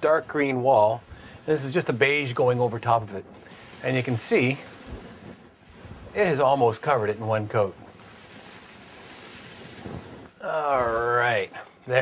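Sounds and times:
paint roller rolling on wall: 0.0 - 12.0.

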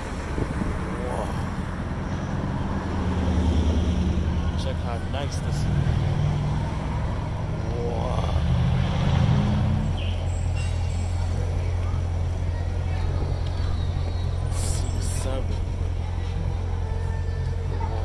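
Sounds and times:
car engine idling: 0.0 - 18.0.

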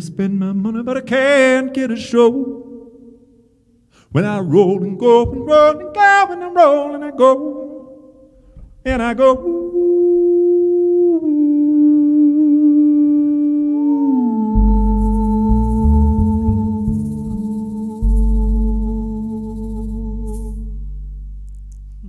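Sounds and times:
woman singing wordless ooh: 8.9 - 20.7
upright double bass notes: 14.4 - 22.0.

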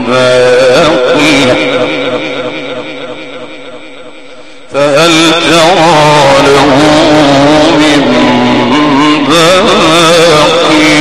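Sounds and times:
man chanting recitation over microphone: 0.0 - 11.0.

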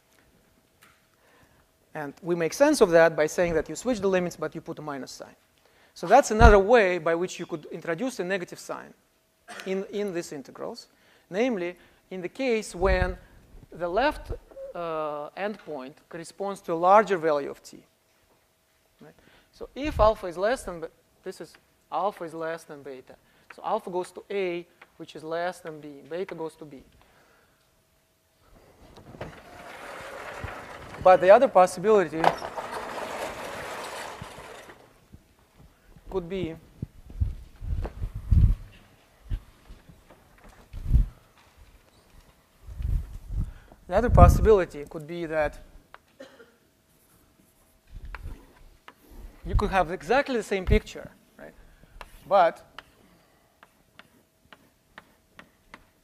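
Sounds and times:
faint room noise: 0.0 - 56.0
chalk tapping on blackboard: 52.0 - 53.0, 53.6 - 56.0.

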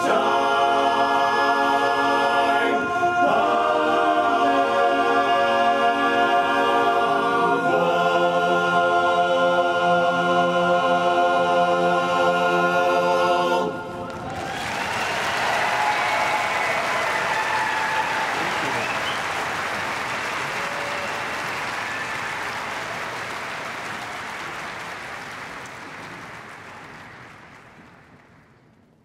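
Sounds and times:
men's chorus singing chord: 0.0 - 14.3
audience applause and cheering: 13.8 - 28.6.

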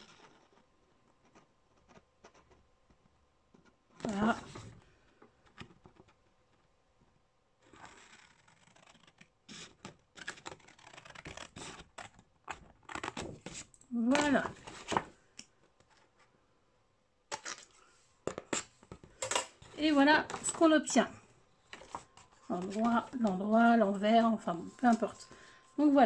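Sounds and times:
scissors snipping paper: 7.8 - 13.2
paper rustling: 21.6 - 26.0.

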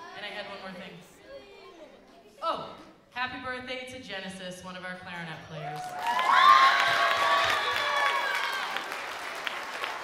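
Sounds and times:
audience applauding: 5.7 - 10.0.

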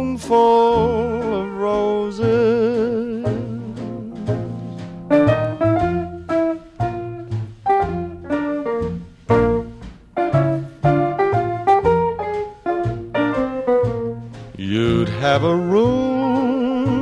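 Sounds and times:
bass line: 0.0 - 17.0
sharply struck melody notes: 0.0 - 17.0
swing band instrumental music: 0.0 - 17.0.

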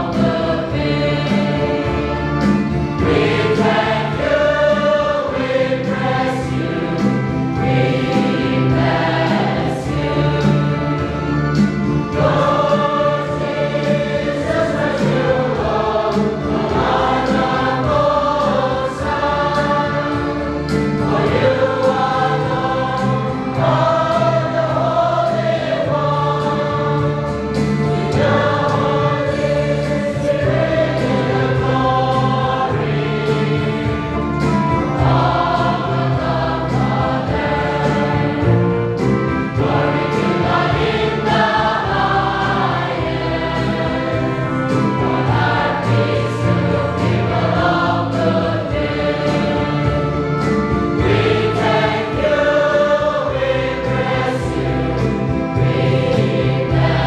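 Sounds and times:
congregation singing a hymn: 0.0 - 57.0.

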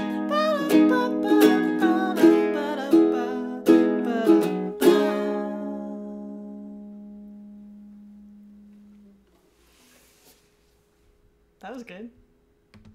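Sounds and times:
ukuleles strumming chords: 0.0 - 8.8.

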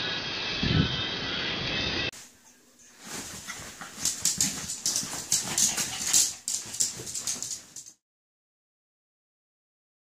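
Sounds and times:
dog scratching fabric bed: 3.0 - 7.9.

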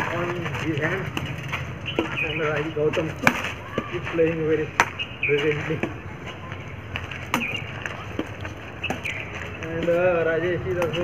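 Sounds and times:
outdoor background noise: 0.0 - 11.0
racket striking shuttlecock: 3.1 - 4.0, 4.7 - 5.0, 7.2 - 9.2.

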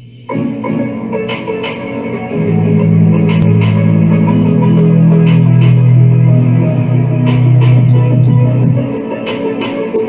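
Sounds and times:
heavy low guitar and bass: 1.9 - 8.9.

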